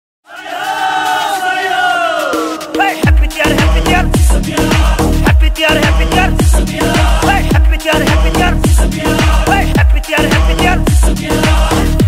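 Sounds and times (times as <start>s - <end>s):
group of voices shouting: 0.3s - 2.6s.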